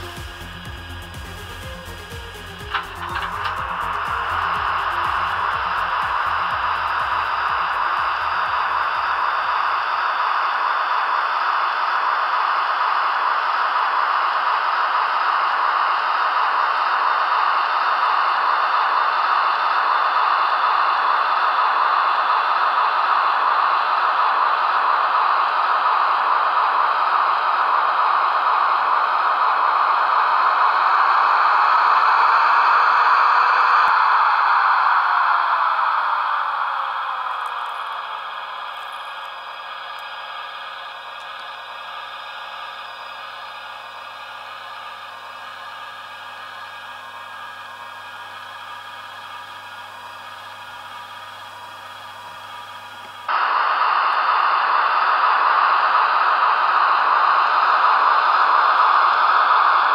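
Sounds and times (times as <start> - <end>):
model locomotive running sound: 0.0 - 59.9.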